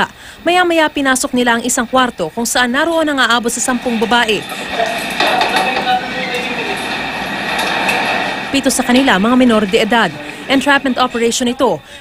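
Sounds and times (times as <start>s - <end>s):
room hiss and hum: 0.0s - 12.0s
faint muffled voices: 3.7s - 12.0s.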